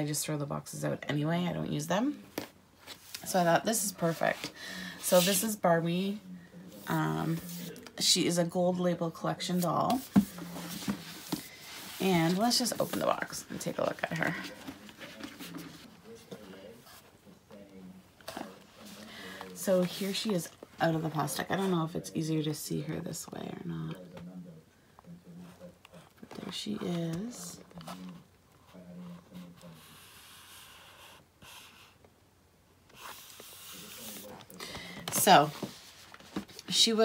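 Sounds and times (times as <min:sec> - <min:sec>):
cardboard box rustling: 0:09.8 - 0:17.0.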